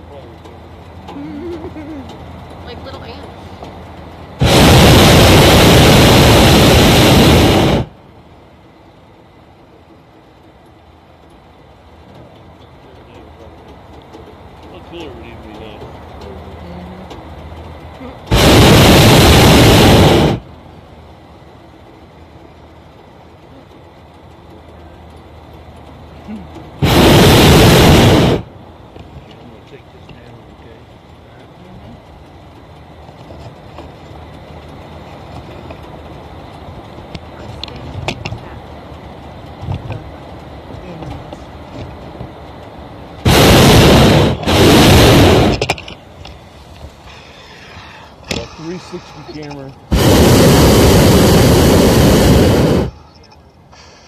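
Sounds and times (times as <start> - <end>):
propane burner blasts: 0.0 - 54.0.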